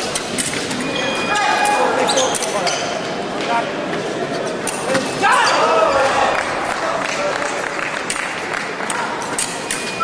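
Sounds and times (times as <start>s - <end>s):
voices in reverberant hall: 0.0s - 10.0s.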